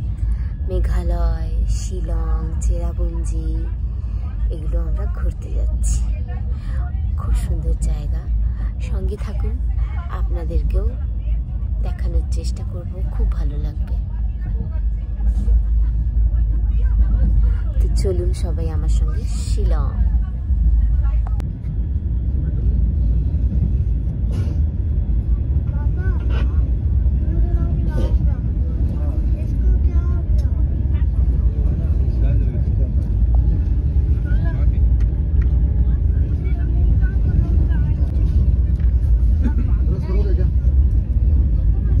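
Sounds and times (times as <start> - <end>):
train rumbling: 0.0 - 42.0
people talking: 0.6 - 11.1, 11.8 - 21.4.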